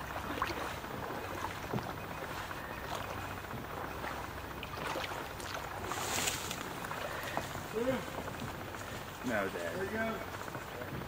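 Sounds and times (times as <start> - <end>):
outdoor background noise: 0.0 - 11.0
faint ticks and rustles: 0.5 - 11.0.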